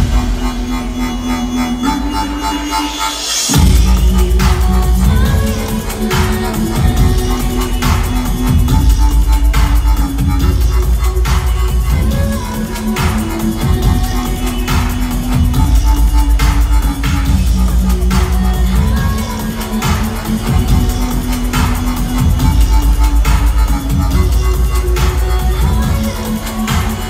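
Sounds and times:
loud electronic dance music: 0:00.0 - 0:27.0.

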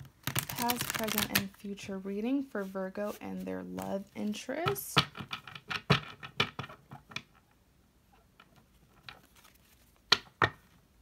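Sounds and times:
cards being shuffled: 0:00.0 - 0:02.0, 0:09.0 - 0:10.3.

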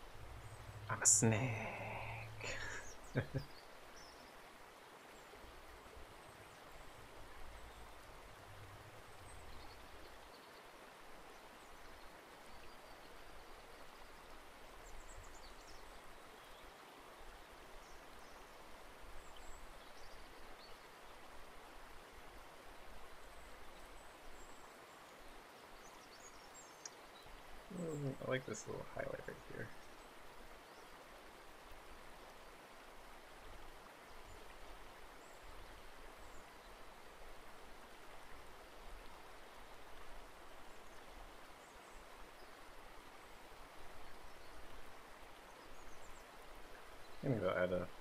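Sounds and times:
faint high ticks: 0:26.8 - 0:27.0.

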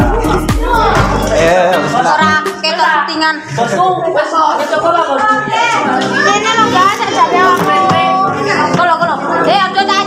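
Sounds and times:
background music: 0:00.0 - 0:10.0
children calling and chattering: 0:00.0 - 0:10.0.

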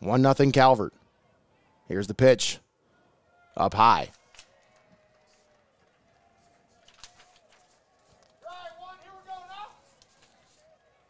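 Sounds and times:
open-air ballpark ambience: 0:00.0 - 0:11.0.

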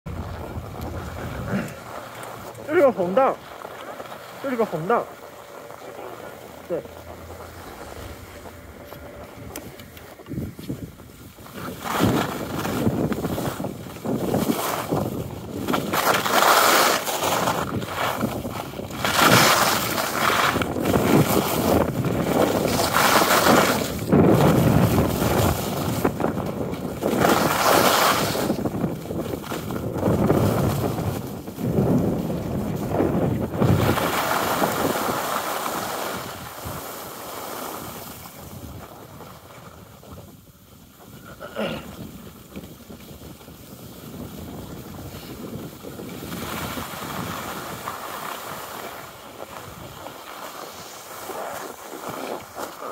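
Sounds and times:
wind buffeting microphone: 0:00.0 - 0:50.2
skis running over snow: 0:00.1 - 0:52.9.

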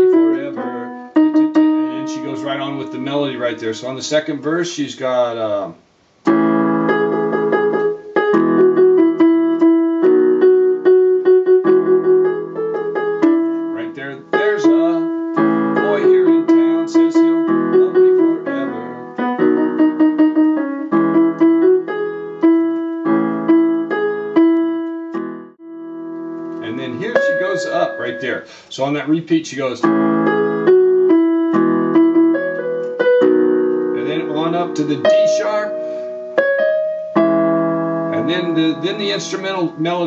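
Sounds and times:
electronic keyboard piano melody: 0:00.0 - 0:04.7, 0:06.2 - 0:40.0.

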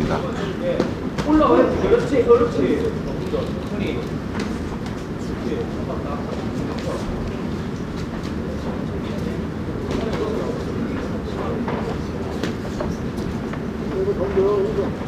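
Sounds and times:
murmur and rumble of hall: 0:00.0 - 0:15.0.

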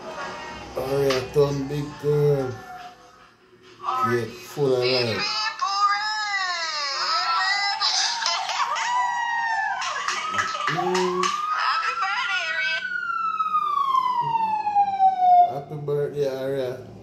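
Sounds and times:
siren-like wail: 0:07.6 - 0:15.9.

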